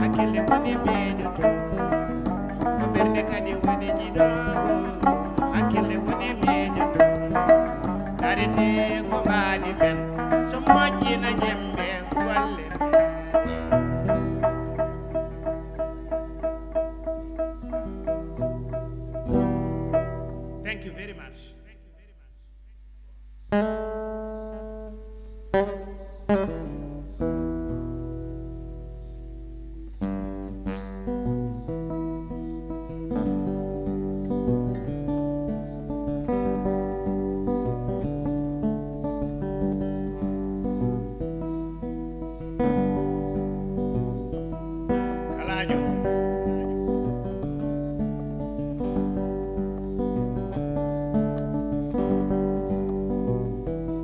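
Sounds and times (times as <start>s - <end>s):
plucked lutes: 0.0s - 21.8s, 23.4s - 54.0s
acoustic guitar: 0.0s - 54.0s.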